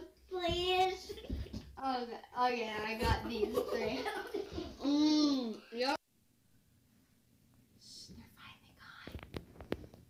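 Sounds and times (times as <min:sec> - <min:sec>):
woman whispering: 0:07.8 - 0:09.2.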